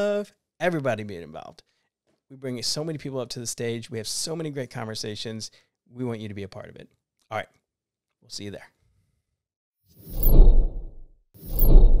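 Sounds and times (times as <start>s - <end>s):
whoosh sound effects: 10.0s - 12.0s.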